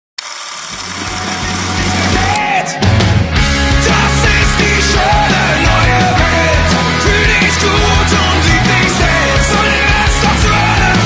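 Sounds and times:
bass notes: 0.8 - 11.0
live punk rock band: 0.8 - 11.0.

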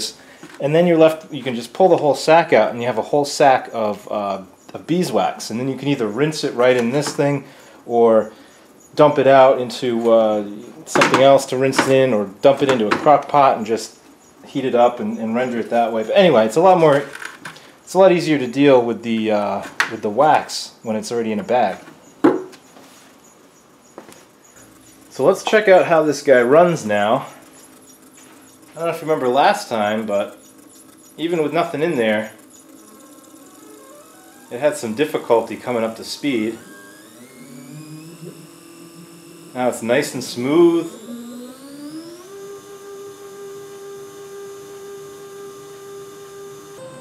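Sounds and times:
stepper motor whining: 0.0 - 47.0.

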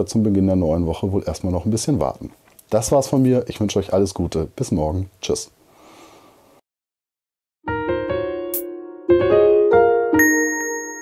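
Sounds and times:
bell-like jingle: 10.2 - 11.0.

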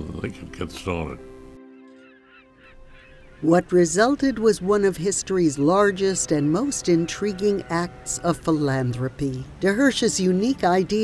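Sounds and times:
steady held chord tone: 0.0 - 3.3, 4.7 - 11.0.

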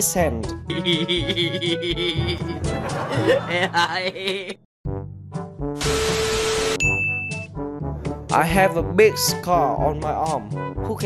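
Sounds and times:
background music: 0.0 - 11.0
high beep: 6.8 - 7.5.

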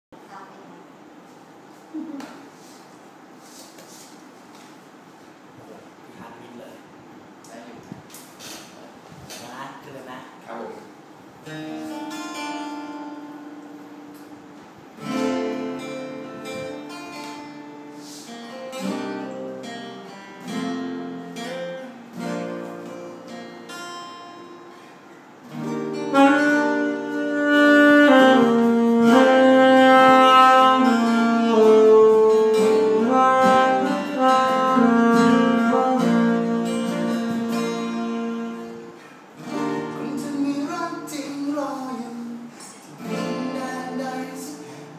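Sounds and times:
acoustic guitars picking: 11.0 - 44.9
saxophone melody: 15.0 - 23.3, 25.6 - 40.2.

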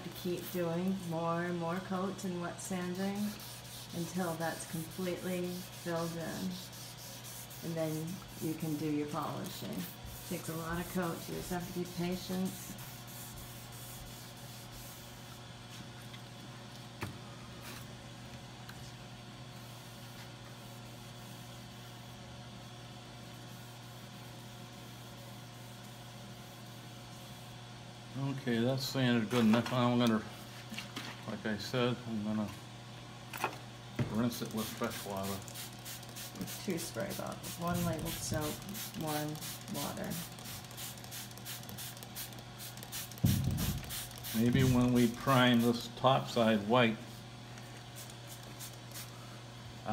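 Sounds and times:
steady low hum: 0.0 - 49.9
spray bottle squirting: 40.3 - 44.5.

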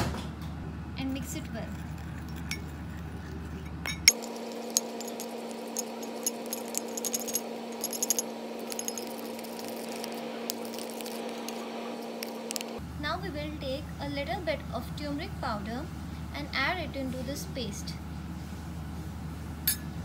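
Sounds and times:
steady low hum: 0.6 - 14.7
spoon scraping glass bowl: 1.4 - 12.8.

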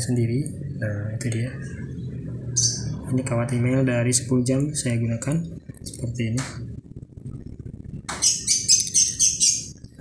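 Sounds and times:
bird chirping: 0.5 - 6.1, 7.3 - 10.0.

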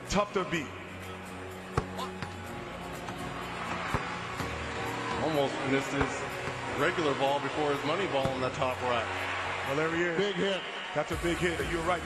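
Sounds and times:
arena crowd noise: 0.0 - 12.0
music playing: 0.0 - 12.0
basketballs thudding: 3.8 - 4.6.

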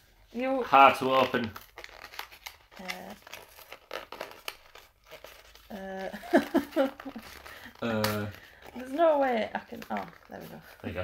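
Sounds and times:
small clicks and crinkles: 1.0 - 11.0.

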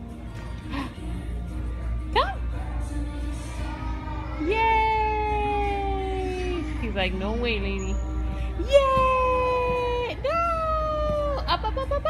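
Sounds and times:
woman cheering sing-song: 4.4 - 6.7, 8.6 - 11.6.

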